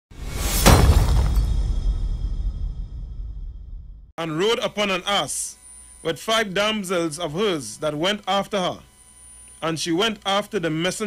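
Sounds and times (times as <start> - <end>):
glass shattering: 0.4 - 2.0.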